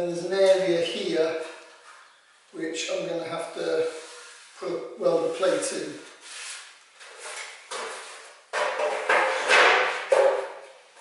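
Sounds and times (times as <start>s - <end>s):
metal knocks and scrapes: 7.1s - 10.6s.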